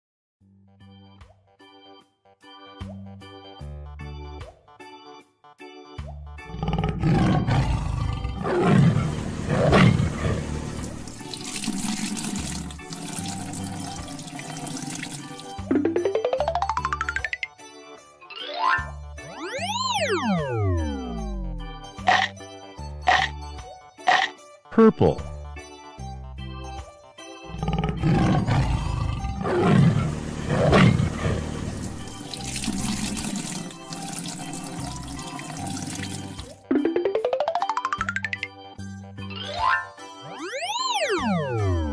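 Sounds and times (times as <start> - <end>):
children's background music: 0.5 - 6.8, 10.9 - 30.0, 31.8 - 41.9
tiger roaring: 6.5 - 10.8, 27.5 - 31.9
liquid pouring from a hose: 9.6 - 15.7, 29.8 - 36.6.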